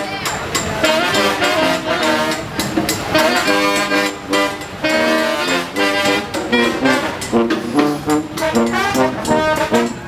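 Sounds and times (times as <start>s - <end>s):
jazz on brass instruments: 0.8s - 10.0s.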